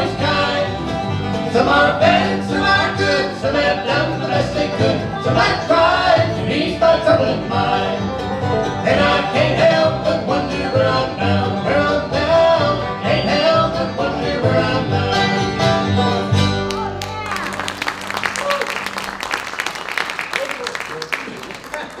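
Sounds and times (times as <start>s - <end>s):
bluegrass band playing: 0.0s - 20.9s
audience applause: 16.7s - 22.0s.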